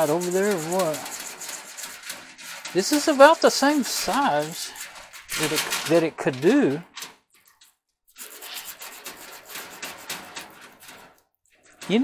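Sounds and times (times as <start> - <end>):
gloved hands scraping wire: 0.0 - 12.0.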